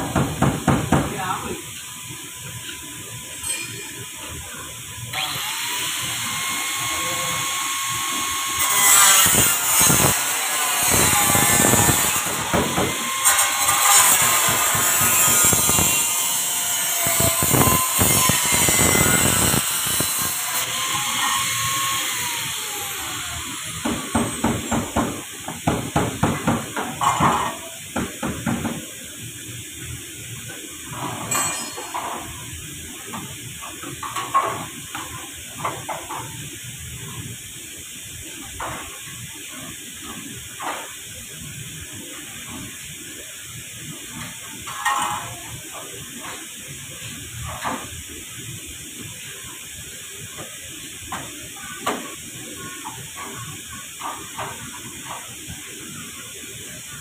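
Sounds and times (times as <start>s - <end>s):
power tool running: 5.1s - 25.4s.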